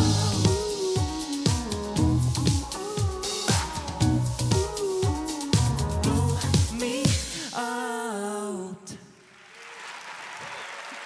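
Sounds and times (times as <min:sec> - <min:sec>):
audience applauding: 0:09.2 - 0:11.0.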